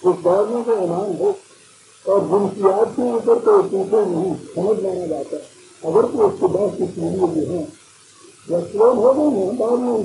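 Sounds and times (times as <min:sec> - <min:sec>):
man lecturing: 0:00.0 - 0:01.4, 0:02.1 - 0:07.8, 0:08.5 - 0:10.0.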